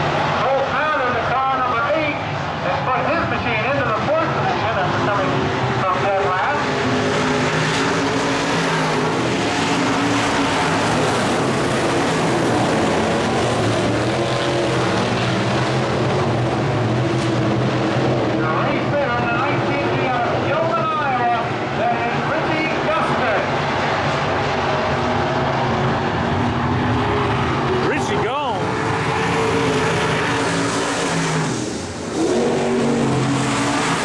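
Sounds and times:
race car engines: 0.0 - 34.0
person speaking: 27.8 - 28.6.

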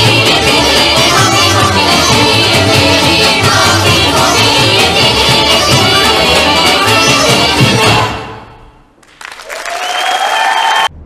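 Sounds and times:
folk dance music: 0.0 - 9.0
audience applause: 9.0 - 11.0.

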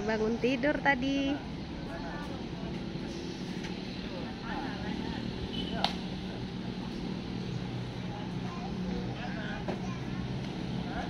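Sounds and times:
faint distant voices: 1.1 - 11.0.

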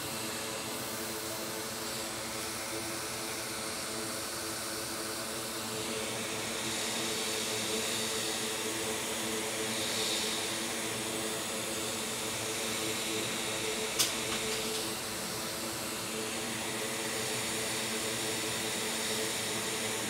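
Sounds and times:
blower fan rushing air: 0.0 - 20.0.

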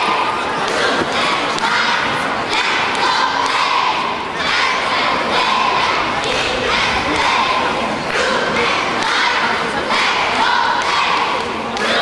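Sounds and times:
cheerleaders shouting in unison: 0.0 - 12.0
crowd yelling: 0.0 - 12.0.

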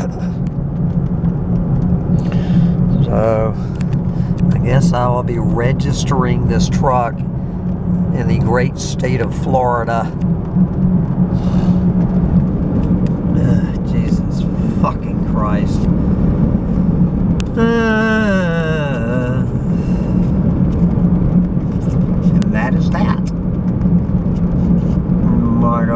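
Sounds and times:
truck engine and road noise: 0.0 - 25.9
person vocalizing: 17.5 - 20.0.

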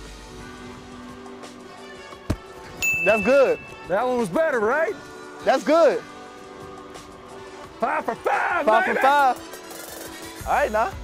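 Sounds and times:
low background music: 0.0 - 11.0
football smacking into hands: 2.2 - 2.8.

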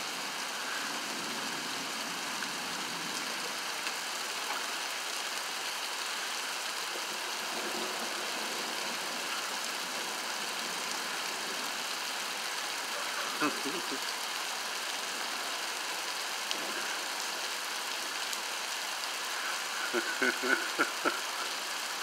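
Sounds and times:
heavy rain falling: 0.0 - 22.0.

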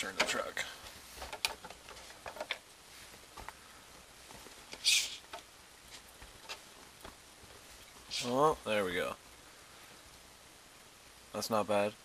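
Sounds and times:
hissy rustle: 0.1 - 11.9
toy truck handling clicks and taps: 1.2 - 2.6.

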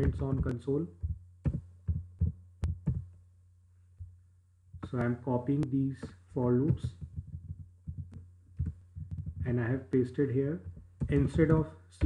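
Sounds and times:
soft low thuds: 0.0 - 3.3, 4.0 - 9.8, 10.6 - 12.0
low electrical hum: 0.0 - 12.0.

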